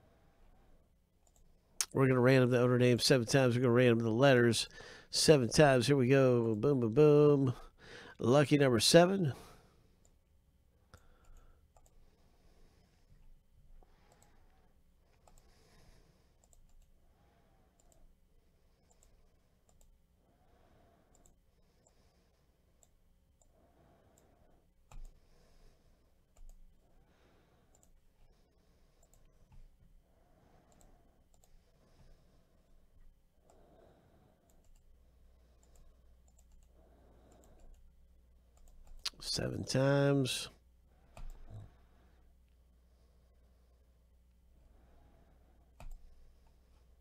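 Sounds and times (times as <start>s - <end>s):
computer mouse clicks: 1.2s - 2.0s, 10.9s - 12.0s, 14.0s - 14.5s, 15.1s - 15.6s, 16.4s - 17.0s, 17.7s - 18.1s, 18.8s - 20.0s, 21.1s - 22.0s, 22.8s - 25.4s, 26.3s - 26.7s, 27.7s - 28.0s, 28.9s - 29.8s, 30.6s - 31.7s, 34.4s - 37.9s, 38.5s - 39.2s, 41.1s - 41.6s, 45.7s - 46.5s.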